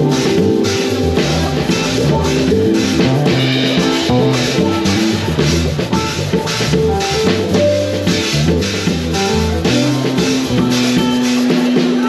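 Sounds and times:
bass guitar notes: 0:00.0 - 0:12.0
congas: 0:00.0 - 0:12.0
drum kit beat: 0:00.0 - 0:12.0
keyboard: 0:00.0 - 0:12.0.

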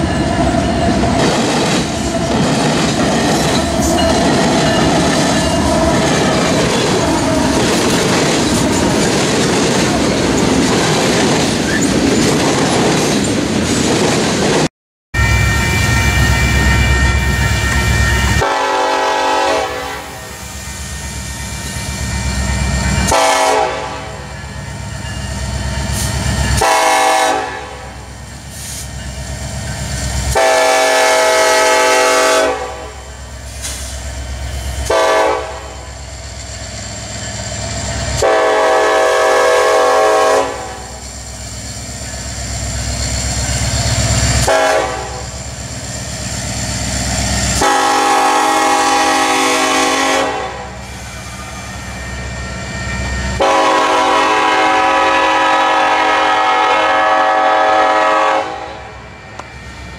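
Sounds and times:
train rumble: 0:00.0 - 0:14.7, 0:15.3 - 0:59.9
train horn blasts: 0:15.2 - 0:20.5, 0:23.0 - 0:24.4, 0:26.5 - 0:28.1, 0:30.3 - 0:33.1, 0:34.8 - 0:36.0, 0:38.1 - 0:41.0, 0:44.4 - 0:45.4, 0:47.5 - 0:51.0, 0:53.4 - 0:59.2.

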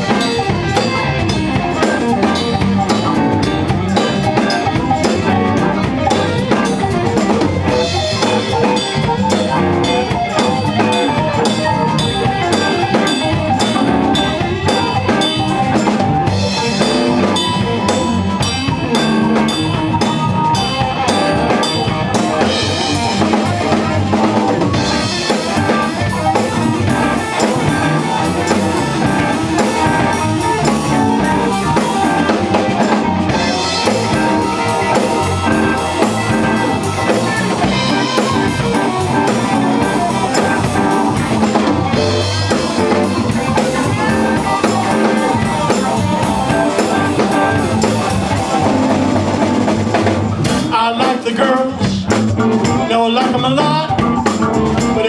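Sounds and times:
drum kit: 0:00.0 - 0:55.0
live band playing: 0:00.0 - 0:55.0.

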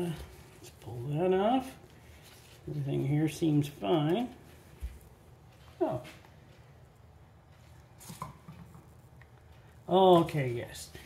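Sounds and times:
rustles of gloved hands: 0:00.0 - 0:11.0.

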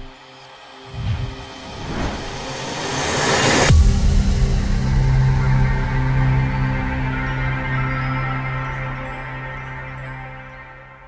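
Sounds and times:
low hit: 0:00.9 - 0:03.0
whoosh: 0:00.9 - 0:03.6.

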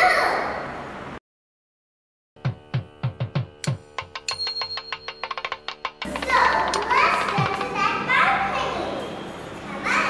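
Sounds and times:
children talking and calling out: 0:06.1 - 0:10.0.

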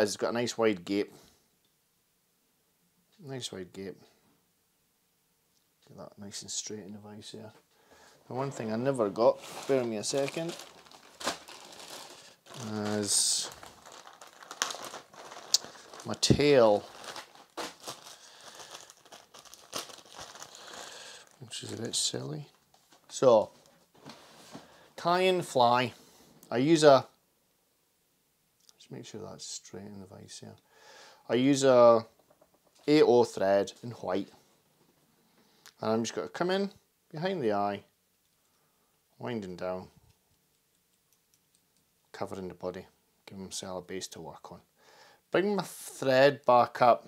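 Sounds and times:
plastic packets crinkling: 0:08.4 - 0:23.2.

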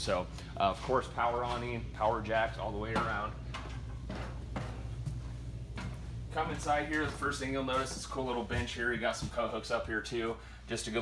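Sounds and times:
steady low hum: 0:00.0 - 0:11.0
footsteps on steps: 0:02.9 - 0:10.0.

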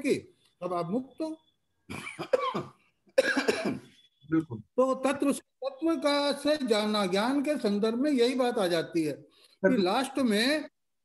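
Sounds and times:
man coughing: 0:01.9 - 0:03.9.

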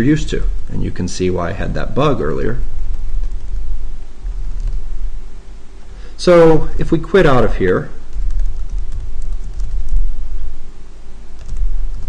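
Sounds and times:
faint background noise: 0:00.0 - 0:12.0
steady low hum: 0:00.0 - 0:12.0.

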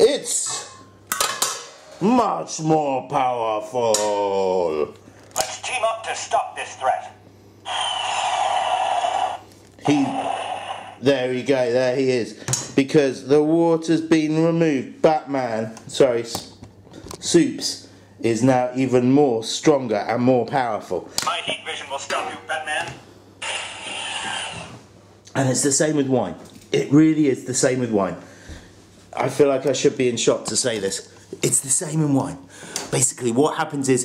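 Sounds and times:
toy speaker hiss with falling tone: 0:07.7 - 0:11.0.

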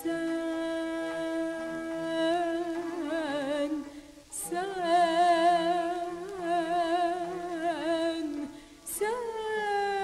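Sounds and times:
faint accompaniment notes: 0:00.0 - 0:10.0
person singing with vibrato: 0:00.0 - 0:10.0.

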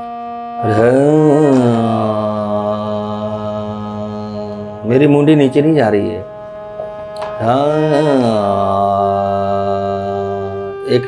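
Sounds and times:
faint steady drone: 0:00.0 - 0:11.0
man singing low held note: 0:00.0 - 0:11.0
man speaking: 0:04.8 - 0:06.3.

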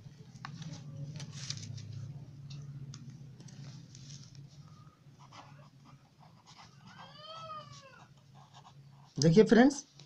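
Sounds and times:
pen scratching on paper: 0:05.2 - 0:07.1, 0:08.0 - 0:09.2
faint animal call: 0:06.7 - 0:08.2.

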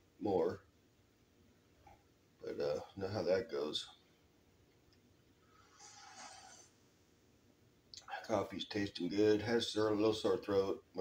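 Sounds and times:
slurp of coffee from a mug: 0:05.7 - 0:06.7.

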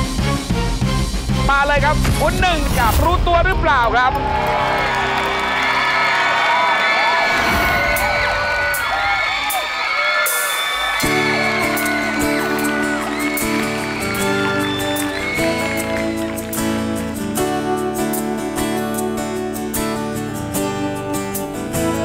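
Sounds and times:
music: 0:00.0 - 0:22.0
audience cheering and whooping: 0:04.1 - 0:17.0.

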